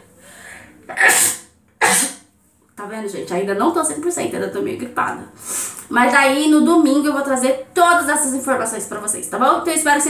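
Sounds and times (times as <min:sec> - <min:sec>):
faint in-breath: 0:00.0 - 0:00.8
woman sneezing: 0:00.9 - 0:02.2.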